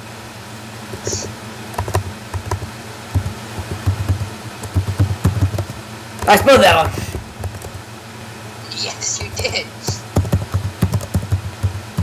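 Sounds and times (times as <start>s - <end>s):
computer keyboard typing: 0.9s - 7.8s, 9.3s - 12.0s.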